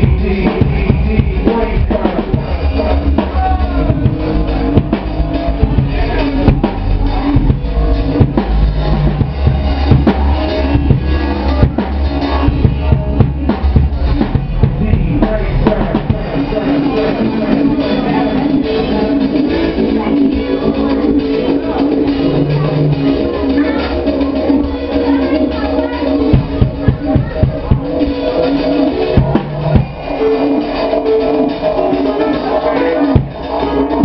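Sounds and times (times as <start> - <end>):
deep bass line: 0.0 - 34.0.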